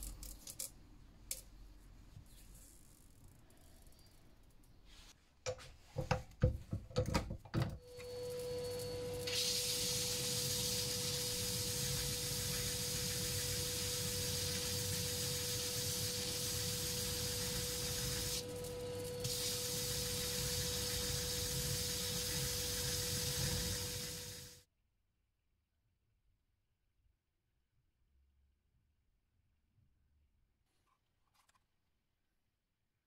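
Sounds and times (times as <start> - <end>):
sanding hiss: 9.2 - 24.6.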